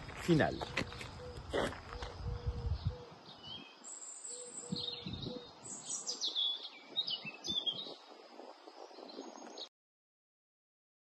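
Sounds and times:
small birds chirping: 0.1 - 9.7
low handling or wind rumble: 2.0 - 3.0.

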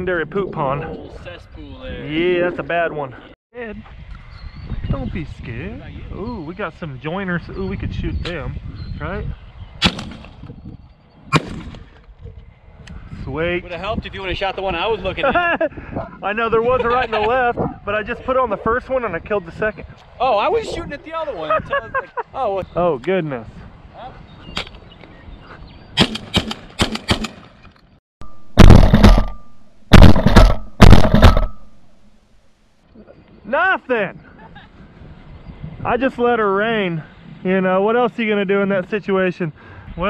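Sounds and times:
shotgun shot: 9.8 - 10.4, 11.3 - 11.8, 26.0 - 27.5, 28.2 - 32.0.

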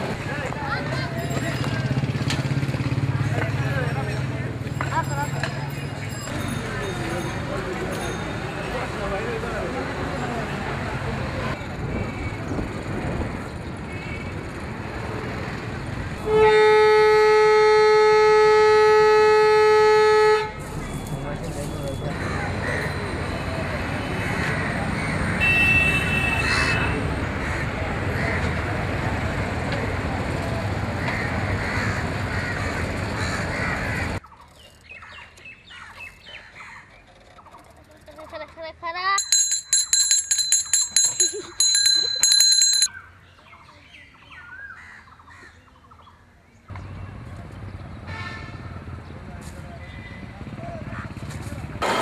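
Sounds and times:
street noise: 0.0 - 52.0
vehicle horn blast: 16.2 - 20.6, 25.4 - 27.0
bicycle bell ringing rapidly: 39.2 - 42.9.

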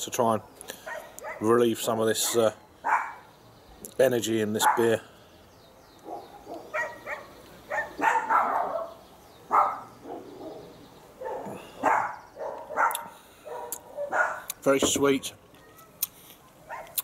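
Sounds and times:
dog barking: 0.8 - 1.5, 2.2 - 3.2, 4.6 - 4.9, 6.0 - 14.5, 16.7 - 17.0.

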